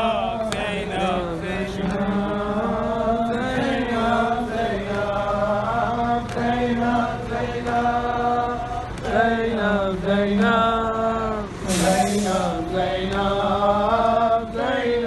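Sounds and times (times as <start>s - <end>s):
men chanting a lament: 0.0s - 15.0s.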